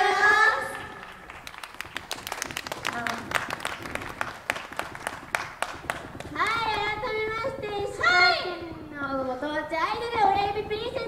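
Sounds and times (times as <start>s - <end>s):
audience applauding: 0.7s - 6.8s.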